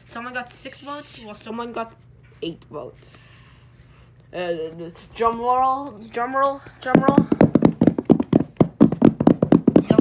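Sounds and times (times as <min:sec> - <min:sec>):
drum roll of rapid taps: 0:06.8 - 0:10.0.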